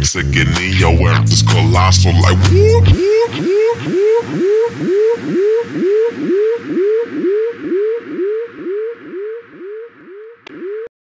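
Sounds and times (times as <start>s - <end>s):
repeated rising synth note: 1.6s - 10.9s.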